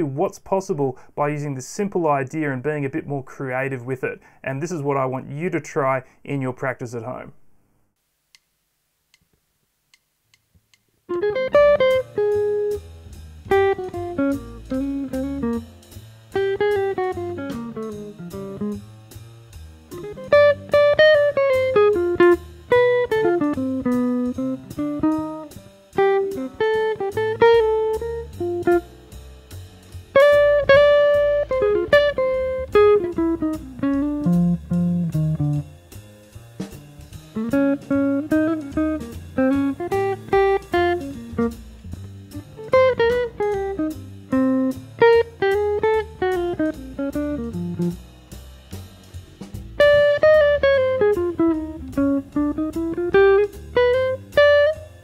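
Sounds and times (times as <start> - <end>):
bass: 0.0 - 7.4, 11.1 - 55.0
jazz guitar solo: 11.1 - 19.0, 19.8 - 36.0, 36.6 - 48.2, 49.4 - 55.0
drums: 11.1 - 55.0.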